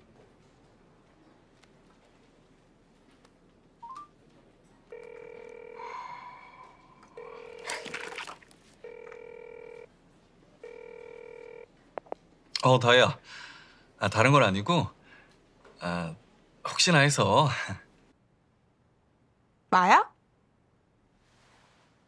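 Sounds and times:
phone ringback tone: 0:04.9 - 0:06.2, 0:07.2 - 0:09.9, 0:10.6 - 0:11.7.

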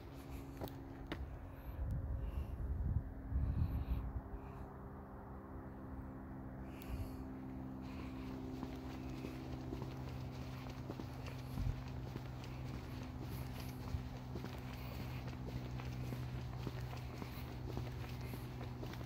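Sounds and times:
footsteps on paved path: 0:00.0 - 0:01.7, 0:07.7 - 0:19.0
steady low hum: 0:00.0 - 0:19.0.

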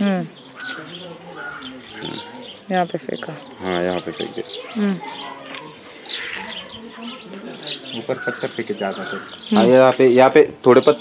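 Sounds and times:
birds chirping: 0:00.0 - 0:11.0.

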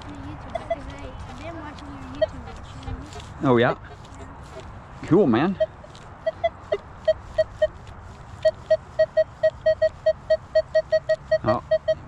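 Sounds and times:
metal detector beeps: 0:05.6 - 0:07.7, 0:08.4 - 0:12.0.

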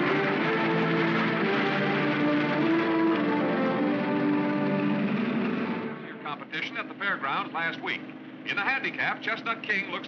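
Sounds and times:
film score music: 0:00.0 - 0:10.0
man talking on car radio: 0:06.0 - 0:10.0.

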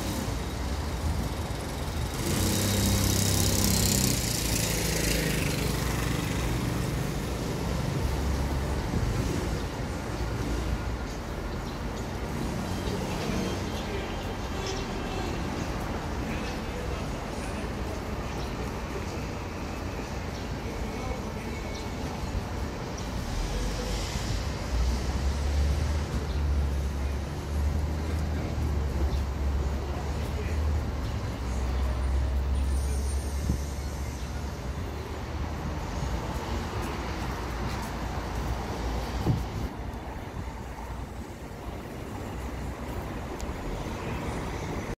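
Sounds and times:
busy street traffic: 0:00.0 - 0:45.0.

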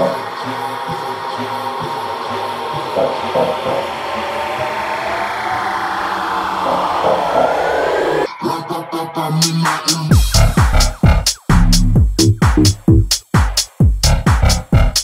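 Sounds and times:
bass house music: 0:00.0 - 0:08.3, 0:09.3 - 0:15.0.

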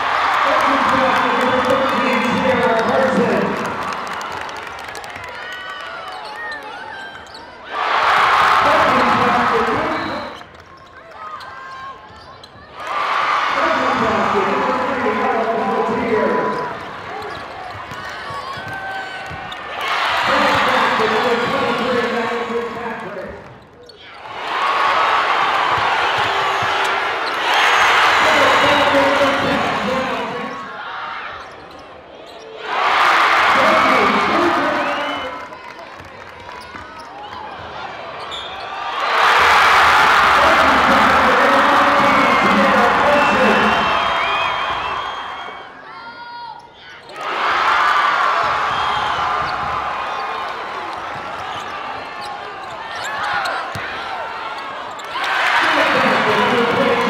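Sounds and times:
crowd cheering: 0:00.0 - 0:23.4, 0:24.0 - 0:31.5, 0:32.6 - 0:57.0.

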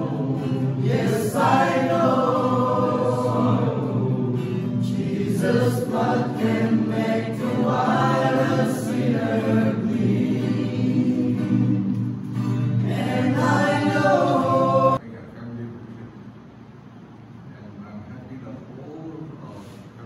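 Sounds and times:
male choir singing gospel: 0:00.0 - 0:15.0.

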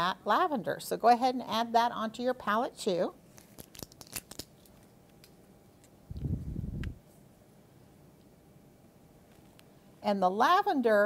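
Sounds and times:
muffled low rumble: 0:06.1 - 0:07.0.

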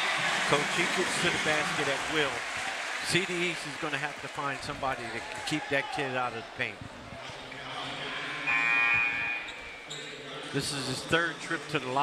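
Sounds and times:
murmur of gym crowd: 0:00.0 - 0:12.0
scoreboard horn buzz: 0:08.2 - 0:09.8.

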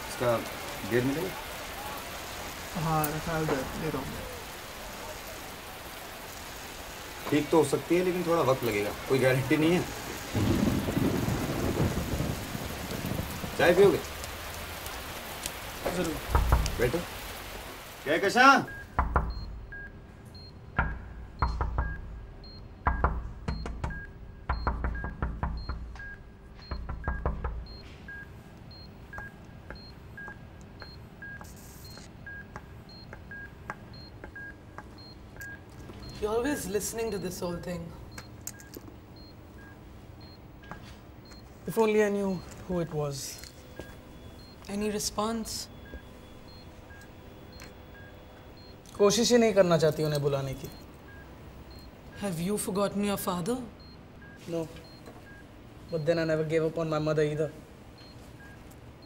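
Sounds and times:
faint steady hum: 0:17.0 - 0:59.0
electronic beeping: 0:18.6 - 0:49.1
low thuds: 0:20.7 - 0:28.3.

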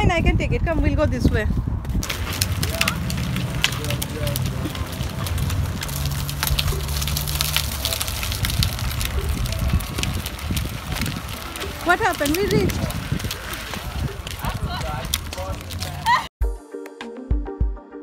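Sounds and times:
wind rumbling on microphone: 0:00.0 - 0:16.3
faint voices: 0:02.0 - 0:16.3.

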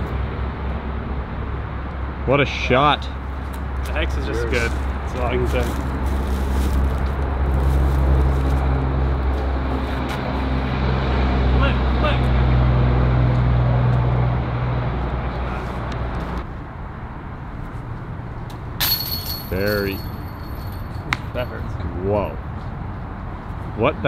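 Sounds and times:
engine droning: 0:00.0 - 0:18.8.

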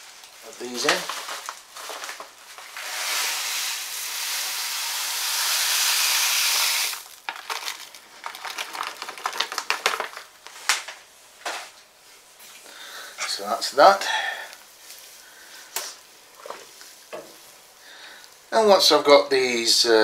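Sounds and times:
plastic bag rustling: 0:00.0 - 0:04.6, 0:06.9 - 0:12.4.

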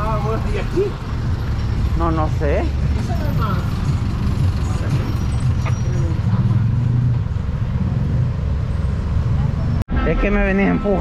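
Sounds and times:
low rumble of traffic engines: 0:00.0 - 0:11.0.

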